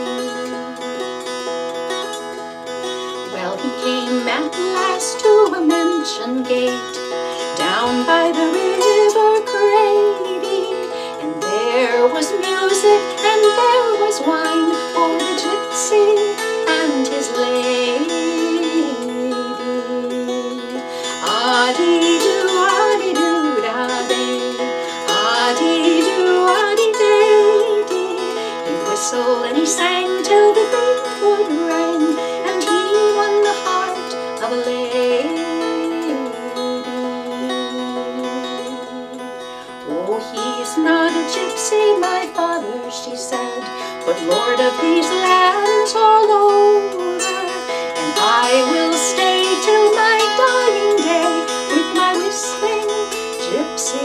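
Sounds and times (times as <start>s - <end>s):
dulcimer melody: 0.0s - 54.0s.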